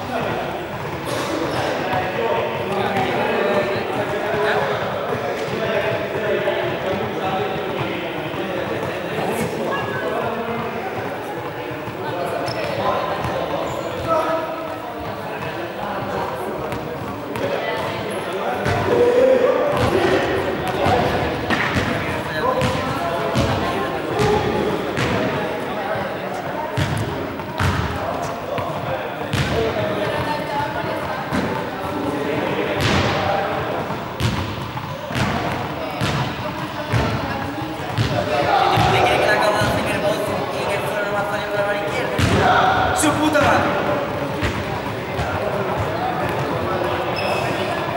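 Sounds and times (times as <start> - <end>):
voices talking: 0.0 - 47.9
balls being caught and thrown: 42.1 - 47.9.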